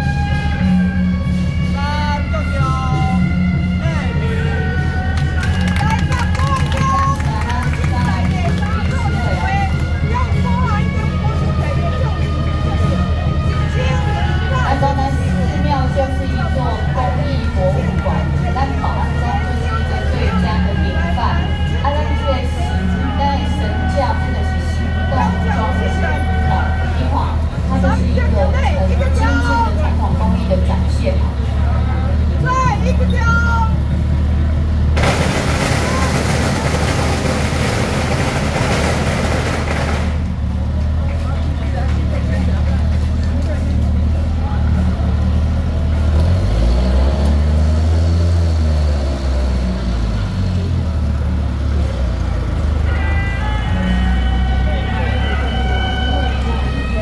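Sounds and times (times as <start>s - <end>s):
people's voices: 0.0s - 57.0s
vehicle engines idling: 0.0s - 57.0s.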